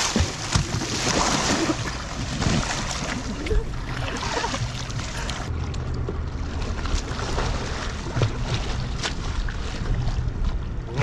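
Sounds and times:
kayak paddle splashing: 0:00.0 - 0:05.5, 0:06.5 - 0:11.0
kayak moving in water: 0:00.0 - 0:11.0.

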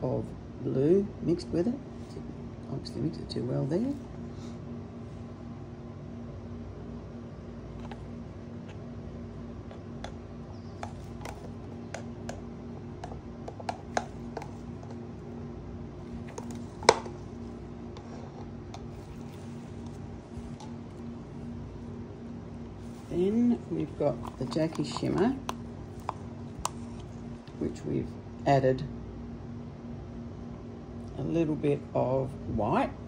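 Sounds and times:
steady low hum: 0:00.0 - 0:33.0
plastic cup and stick clicking: 0:10.8 - 0:12.4, 0:13.0 - 0:15.0, 0:24.1 - 0:27.1.

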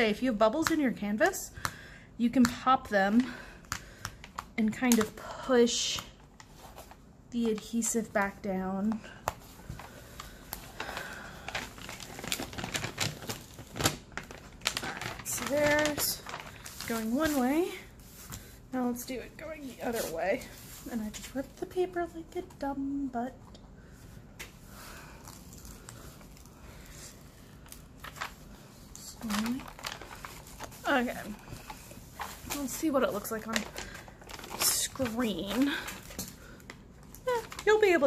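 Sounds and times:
plastic film crinkling: 0:06.0 - 0:22.6, 0:24.4 - 0:38.0.

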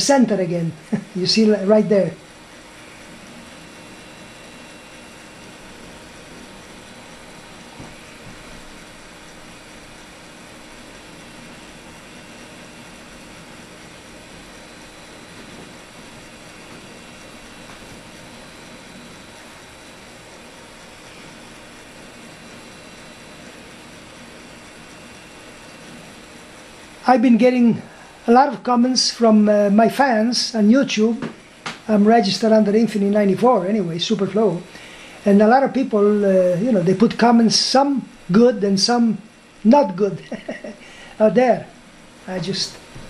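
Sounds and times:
faint hum tones: 0:00.0 - 0:43.0
steady hiss: 0:00.0 - 0:43.0.

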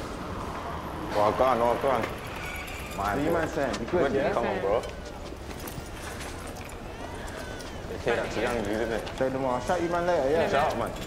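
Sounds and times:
faint voices: 0:00.5 - 0:11.0.

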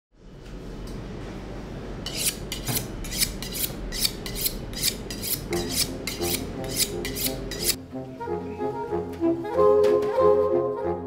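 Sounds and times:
knife scraping on honing rod: 0:02.0 - 0:07.8.

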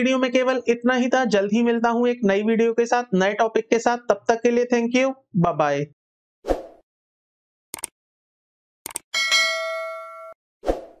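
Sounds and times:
bell-like notification chime: 0:09.2 - 0:10.4.

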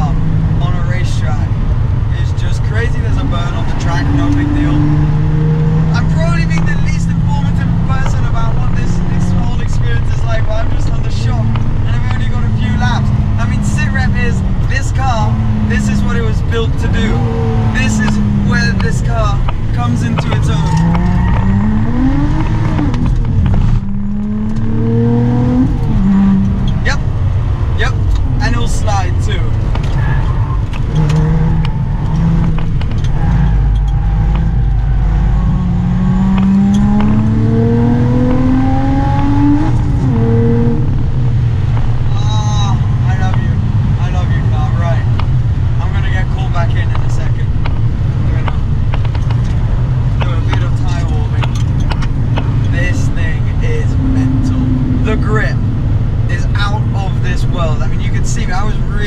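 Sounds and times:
car engine revving with gearshifts: 0:00.0 - 0:59.0.

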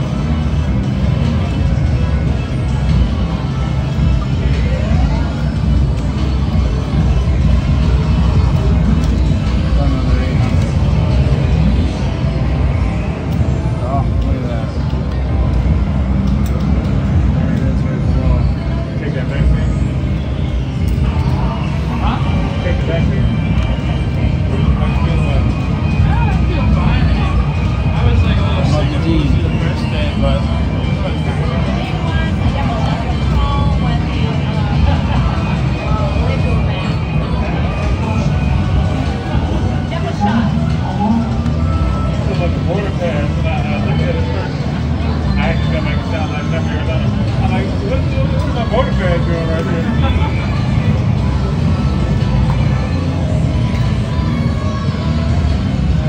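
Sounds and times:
background talk: 0:00.0 - 0:56.0.

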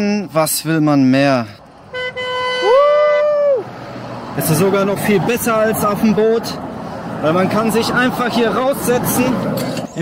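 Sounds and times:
horn honking: 0:01.8 - 0:03.4
sliding second horn tone: 0:01.9 - 0:02.8.

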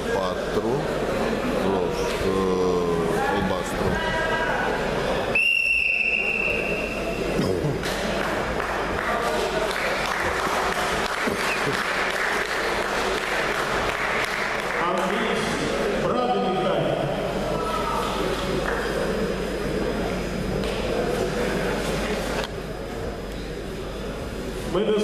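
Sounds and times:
long referee whistle blast: 0:05.3 - 0:07.2
spectators applauding: 0:07.8 - 0:15.6.

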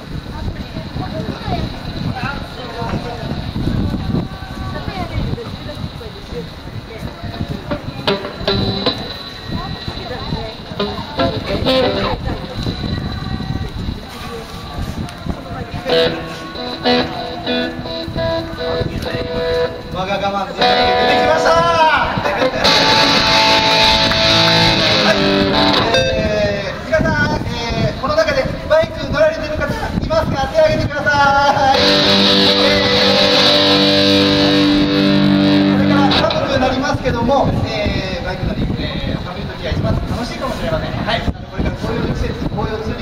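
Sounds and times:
voices of people: 0:00.0 - 0:43.0
electric guitar through amplifiers: 0:07.7 - 0:09.6, 0:10.6 - 0:12.7, 0:15.9 - 0:26.7, 0:31.6 - 0:37.7.

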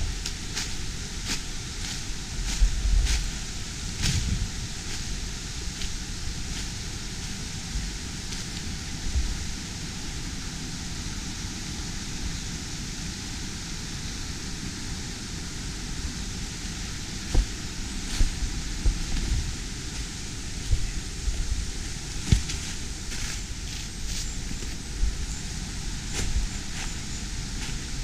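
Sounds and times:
soft low thumps: 0:17.3 - 0:23.4.

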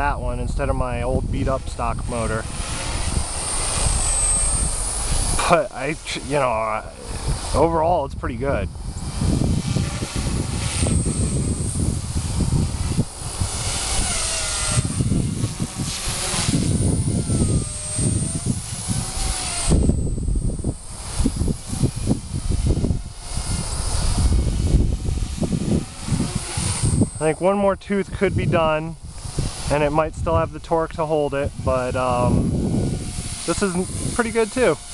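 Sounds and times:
rc helicopter rotor whining: 0:00.0 - 0:34.9
wind rumble on microphone: 0:00.0 - 0:34.9.

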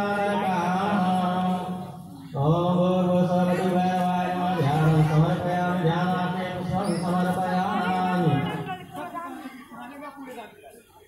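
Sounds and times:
person chanting: 0:00.0 - 0:08.7.

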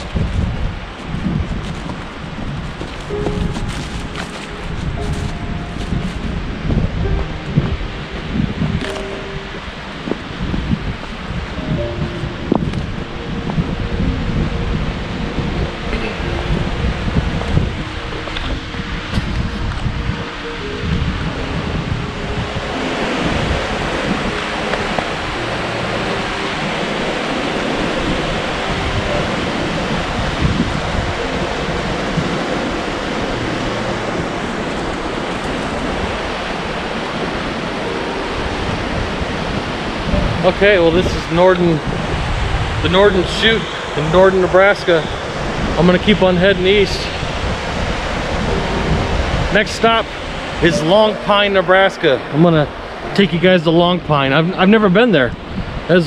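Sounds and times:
wind buffeting microphone: 0:00.0 - 0:56.0
river rapids rushing: 0:01.9 - 0:56.0.

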